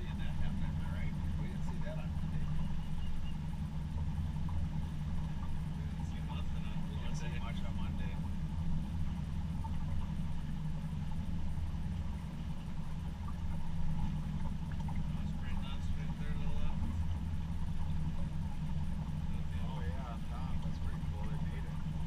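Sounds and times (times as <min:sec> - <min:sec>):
boat motor humming: 0:00.0 - 0:22.0.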